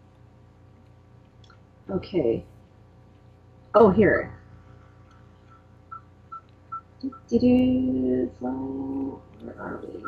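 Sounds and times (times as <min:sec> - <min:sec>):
faint tone-like blips: 0:00.0 - 0:10.0.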